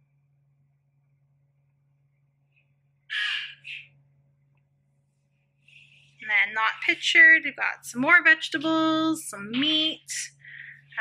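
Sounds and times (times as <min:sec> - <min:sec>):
bird cawing harshly: 0:03.1 - 0:03.8.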